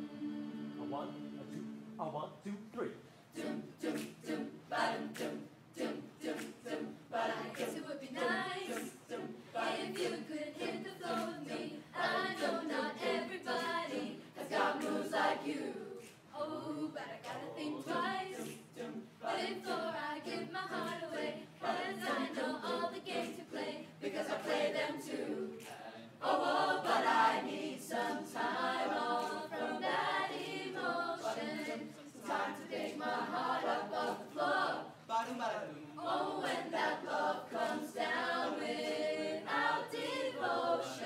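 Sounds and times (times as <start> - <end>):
choir singing a cappella: 0.0 - 2.5, 3.2 - 41.0.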